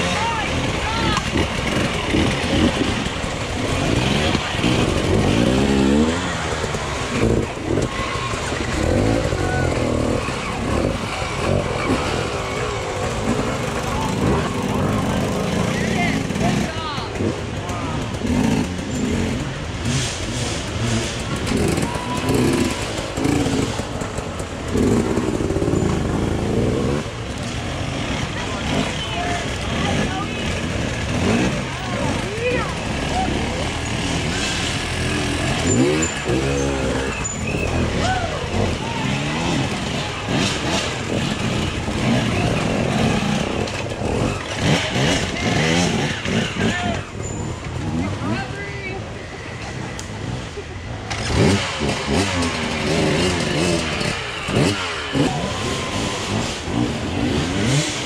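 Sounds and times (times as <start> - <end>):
dirt bike engines revving: 0.0 - 58.0
spectators talking and calling out: 0.0 - 58.0.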